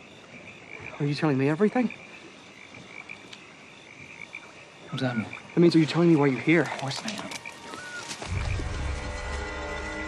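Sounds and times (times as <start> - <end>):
frogs croaking: 0.0 - 10.0
high hum of night ambience: 0.0 - 10.0.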